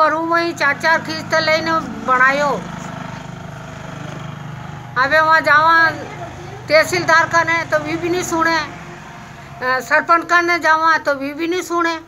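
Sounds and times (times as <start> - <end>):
woman speaking: 0.0 - 2.8, 5.0 - 8.9, 9.6 - 12.0
low engine hum: 0.0 - 10.8.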